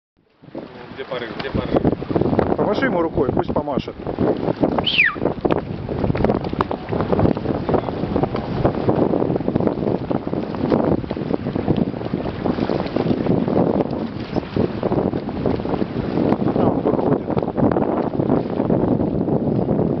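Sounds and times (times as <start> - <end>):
choppy water: 0.2 - 20.0
wind buffeting microphone: 0.2 - 20.0.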